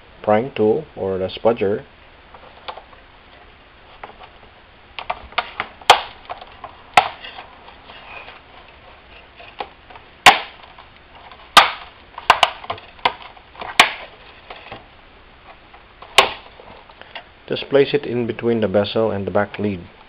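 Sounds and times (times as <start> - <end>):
plastic clips snapping: 11.6 - 14.1.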